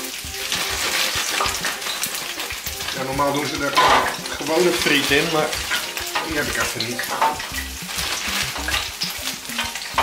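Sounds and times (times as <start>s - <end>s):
meat sizzling in oil: 0.0s - 10.0s.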